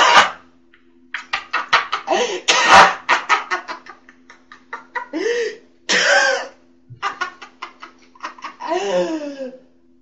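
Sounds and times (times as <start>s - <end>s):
person coughing: 0.0s - 0.4s, 2.1s - 3.1s, 5.9s - 6.6s
faint steady hum: 0.0s - 10.0s.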